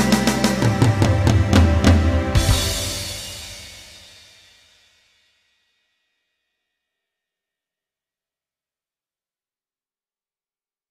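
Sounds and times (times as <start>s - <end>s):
final chord of backing track: 0.0s - 4.3s.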